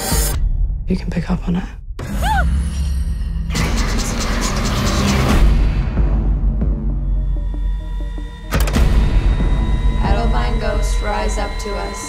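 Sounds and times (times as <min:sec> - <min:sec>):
deep sustained drone: 0:03.1 - 0:12.0.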